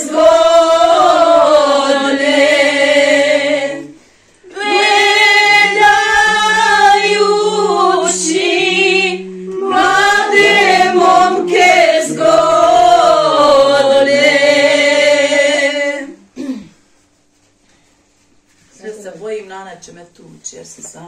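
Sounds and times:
women singing unaccompanied: 0.0 - 16.2.

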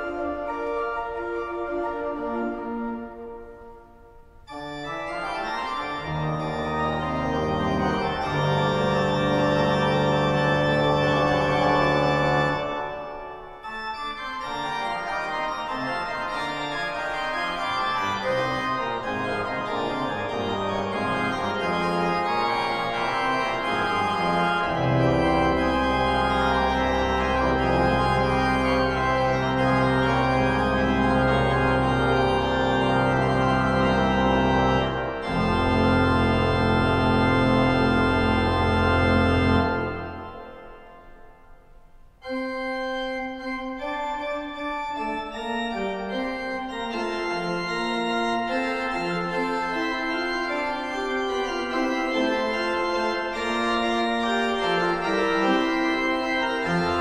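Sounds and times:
deep pipe organ pedal bass: 0.0 - 3.1, 4.5 - 40.9, 42.2 - 57.0.

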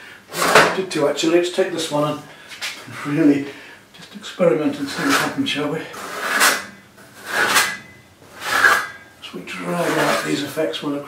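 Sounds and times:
trowel scraping paint on canvas: 4.9 - 5.4, 6.0 - 9.0, 9.6 - 10.4.

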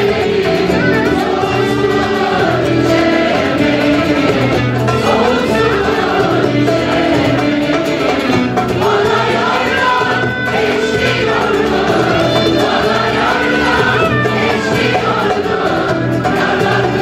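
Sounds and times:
choir singing: 0.0 - 17.0
frame drum beat: 0.0 - 17.0
keyboard: 0.0 - 17.0
ouds: 0.0 - 17.0.

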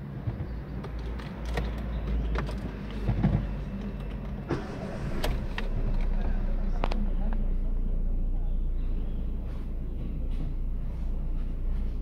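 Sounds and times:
car engine idling: 0.6 - 12.0.

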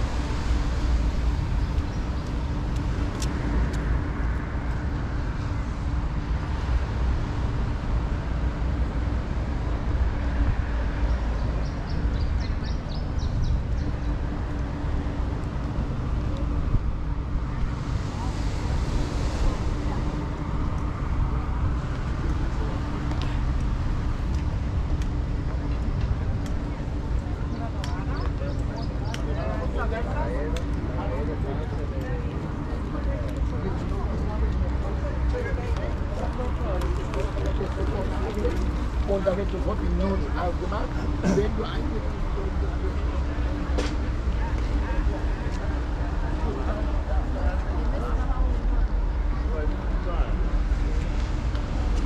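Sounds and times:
low street rumble: 0.0 - 52.0
voices of passers-by: 0.0 - 52.0.

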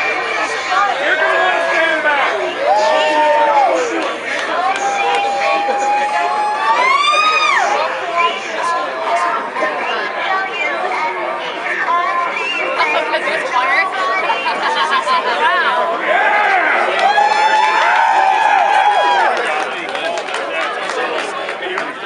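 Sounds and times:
crowd chattering: 0.0 - 22.0.

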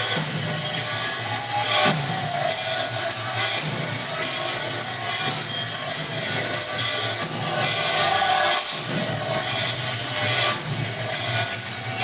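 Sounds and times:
bells and cymbals ringing: 0.0 - 12.0.

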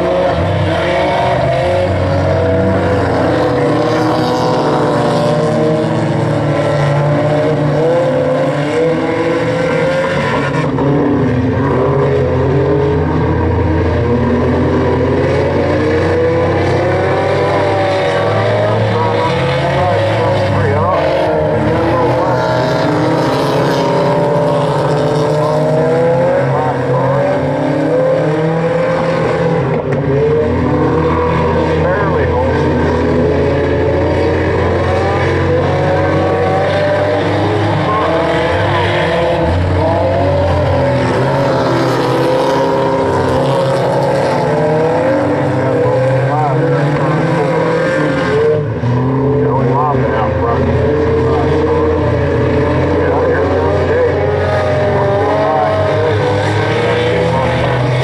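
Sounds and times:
racing car engines: 0.0 - 58.0.

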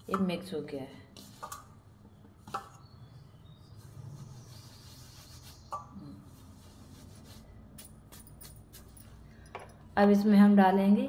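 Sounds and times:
hand rubbing dry flour: 3.6 - 9.2.

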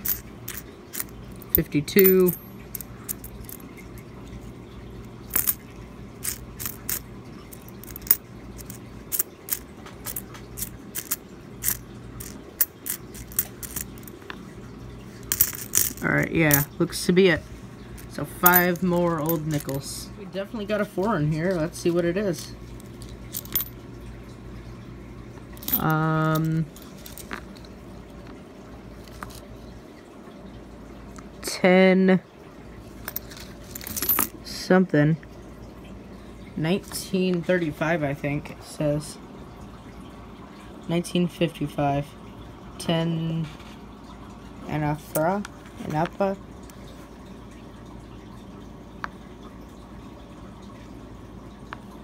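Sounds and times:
coins clicking and clinking: 0.0 - 3.6, 5.3 - 5.6, 6.2 - 14.1, 15.3 - 16.7, 23.3 - 23.7, 25.6 - 27.4, 33.1 - 34.3
low steady hum: 0.0 - 52.0.

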